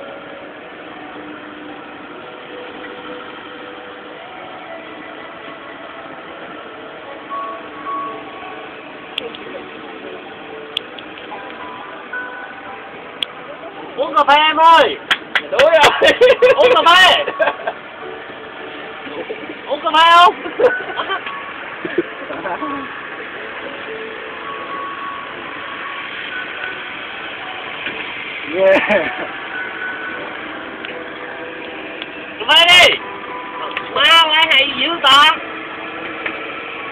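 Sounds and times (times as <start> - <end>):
engine hum: 0.0 - 36.9
faint music held notes: 0.0 - 36.9.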